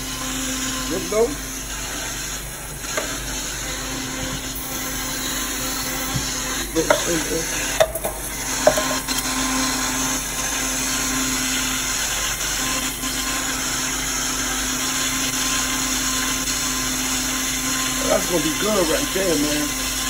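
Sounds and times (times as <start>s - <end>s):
blender running: 0.0s - 20.0s
cup clinking: 7.8s - 9.0s.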